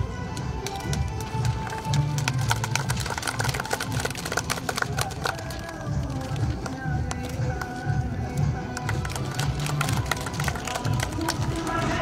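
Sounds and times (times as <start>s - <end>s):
music playing: 0.0s - 12.0s
crowd clapping: 0.3s - 12.0s.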